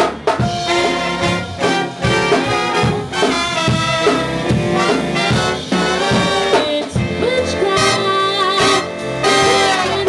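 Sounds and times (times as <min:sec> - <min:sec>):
jazz big band playing: 0:00.0 - 0:10.0
woman singing sliding notes: 0:06.4 - 0:10.0.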